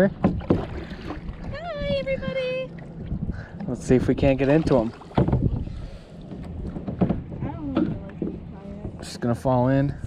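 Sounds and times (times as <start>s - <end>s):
water lapping on kayak hull: 0.0s - 10.0s
wind noise on microphone: 0.2s - 6.0s.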